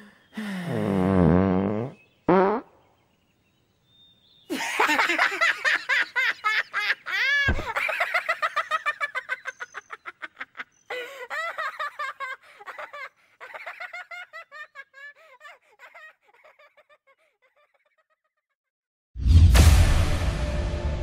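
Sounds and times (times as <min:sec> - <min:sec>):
cartoon character laughing: 0:04.5 - 0:18.5.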